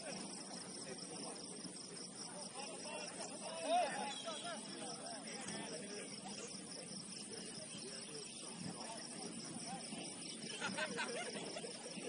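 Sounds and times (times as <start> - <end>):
crickets chirping: 0.0 - 12.0
distant shouts: 2.3 - 6.7.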